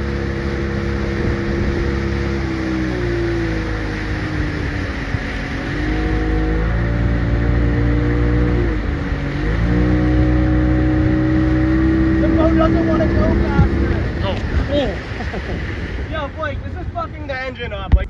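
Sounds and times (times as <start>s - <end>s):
motorboat engine running: 0.0s - 18.0s
wake rushing: 0.0s - 18.0s
wind: 0.0s - 18.0s.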